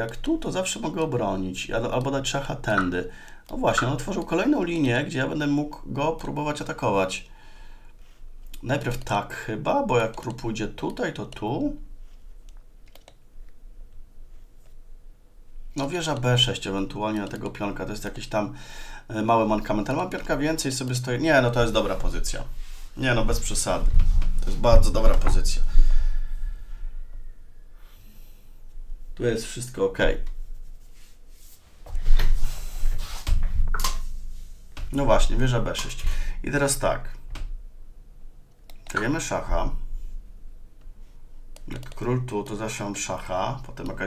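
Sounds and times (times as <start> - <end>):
low room hum: 0.0 - 44.0
computer mouse clicks: 12.5 - 13.6, 38.5 - 39.1, 41.6 - 42.1.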